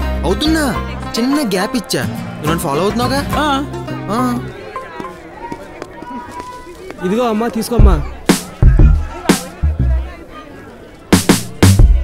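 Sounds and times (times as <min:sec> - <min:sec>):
faint distant voices: 0:03.6 - 0:12.0.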